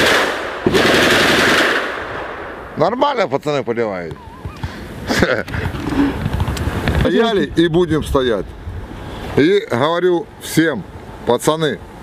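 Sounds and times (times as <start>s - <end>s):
rapid automatic gunfire: 0.0s - 1.9s.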